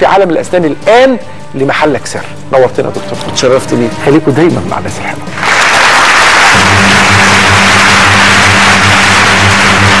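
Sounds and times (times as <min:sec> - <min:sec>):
theme music with pulsing bass: 0:00.0 - 0:10.0
audience applauding: 0:05.3 - 0:10.0.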